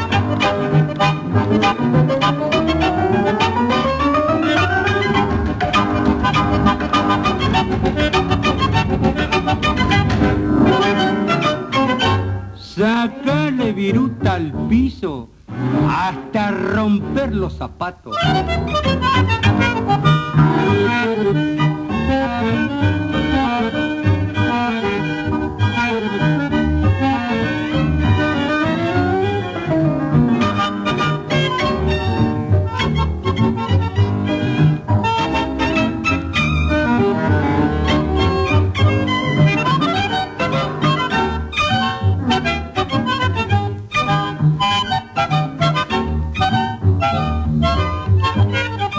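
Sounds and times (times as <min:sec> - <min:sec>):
bandoneon: 0:00.0 - 0:14.8, 0:15.4 - 0:17.2, 0:18.1 - 0:48.9
violins: 0:00.0 - 0:14.8, 0:15.4 - 0:48.9.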